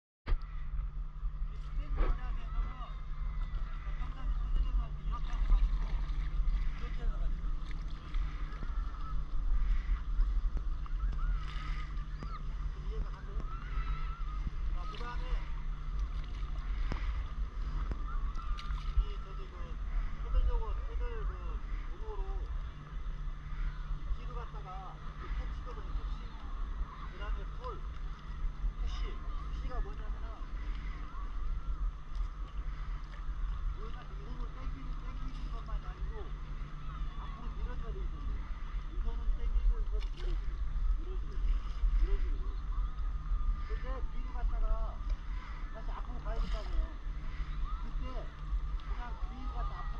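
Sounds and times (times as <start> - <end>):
steady low rumble: 0.3 - 49.9
water sloshing and lapping: 0.3 - 49.9
faint distant voices: 0.4 - 49.9
short splashes: 5.1 - 20.3.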